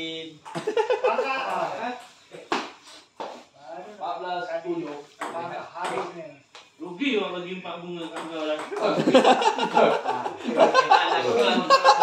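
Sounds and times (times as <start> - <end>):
men talking: 0.0 - 2.6, 3.4 - 12.0.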